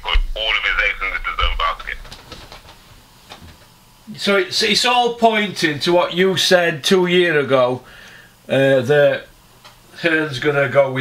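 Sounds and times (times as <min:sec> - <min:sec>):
man's voice over telephone line: 0:00.0 - 0:02.1.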